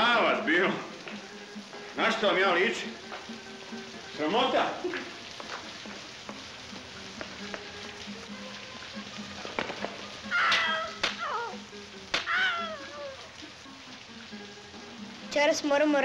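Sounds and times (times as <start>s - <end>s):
faint music: 0.0s - 16.0s
rain falling: 0.0s - 16.0s
high wavering cries: 10.2s - 13.6s.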